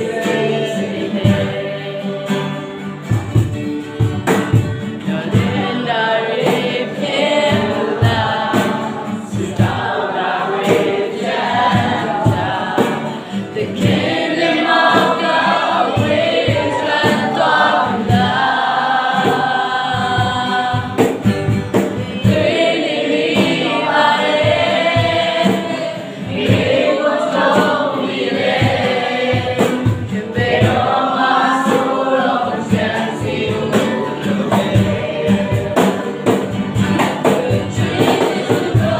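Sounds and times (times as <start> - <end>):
man and woman singing: 0.0 - 3.6, 4.5 - 38.9
cajon beating: 0.0 - 38.9
strummed acoustic guitars: 0.0 - 38.9.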